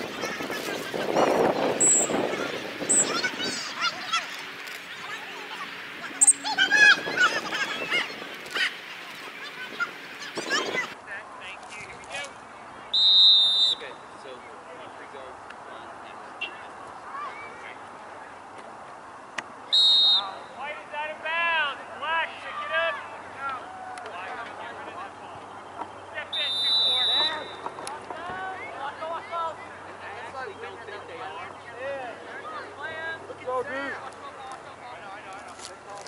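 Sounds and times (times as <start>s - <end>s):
distant shouting and chatter: 0.0s - 36.0s
referee's whistle blasts: 12.9s - 14.0s, 19.7s - 20.5s, 26.3s - 27.7s.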